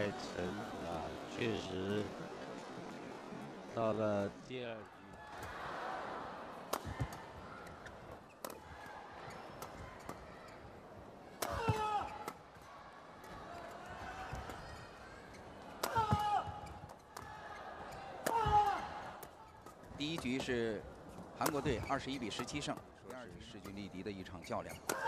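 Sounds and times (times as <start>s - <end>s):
rackets striking shuttlecock: 6.6s - 8.7s, 11.3s - 12.4s, 15.8s - 17.3s, 18.2s - 20.4s.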